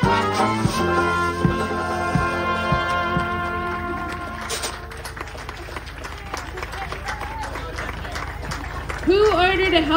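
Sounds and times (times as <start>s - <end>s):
jazz band horns holding a chord: 0.0s - 5.3s
scattered clapping: 2.7s - 9.9s.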